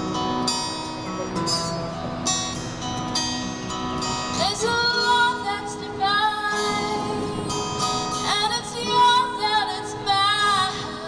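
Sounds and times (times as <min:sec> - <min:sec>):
acoustic guitar: 0:00.0 - 0:11.0
woman singing into a microphone: 0:04.4 - 0:11.0.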